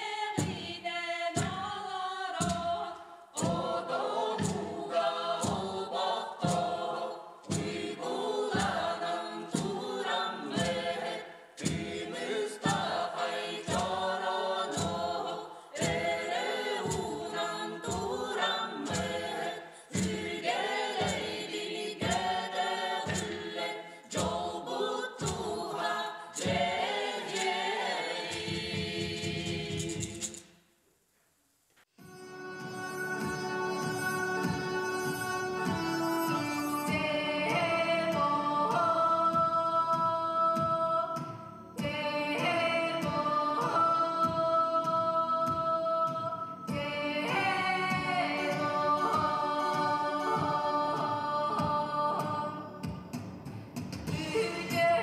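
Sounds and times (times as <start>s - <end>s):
chorus singing folk song: 0.0s - 30.6s, 32.0s - 55.0s
steady drum beat: 0.3s - 30.4s.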